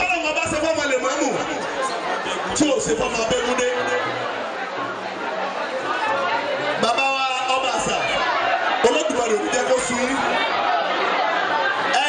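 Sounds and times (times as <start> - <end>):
man speaking over pa system: 0.0 - 1.6, 2.5 - 4.1, 6.8 - 8.1, 8.8 - 10.3
crowd chatter: 0.0 - 12.0.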